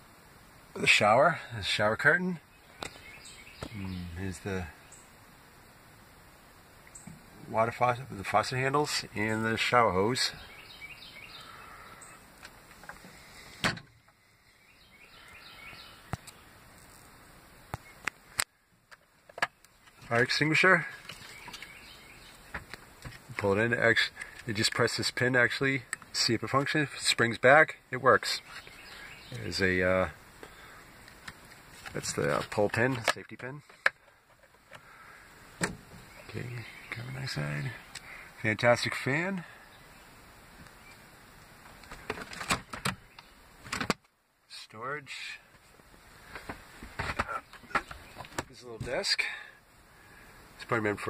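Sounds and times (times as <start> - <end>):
faint background hiss: 0.0 - 51.0.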